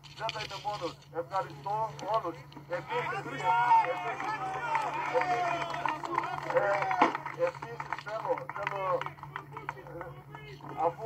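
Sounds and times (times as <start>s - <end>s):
steady low hum: 0.0s - 11.0s
crowd talking: 0.2s - 11.0s.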